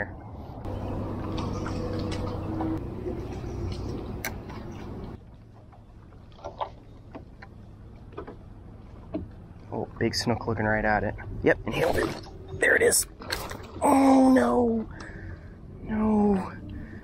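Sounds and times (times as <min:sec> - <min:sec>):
water and wind noise: 0:00.3 - 0:05.3.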